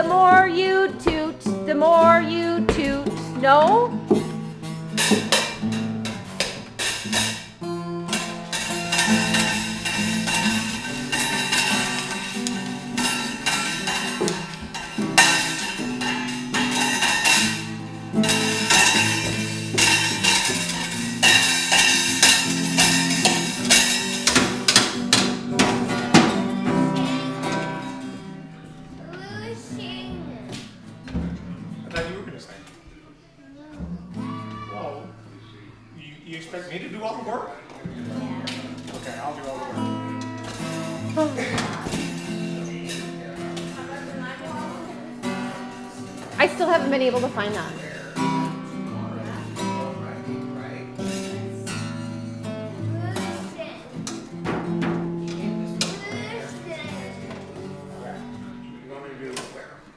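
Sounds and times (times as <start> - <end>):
acoustic guitar strumming: 0.0 - 32.6, 33.6 - 59.8
child banging drum kit: 0.1 - 28.0, 53.2 - 56.4
cymbals struck: 6.8 - 24.6.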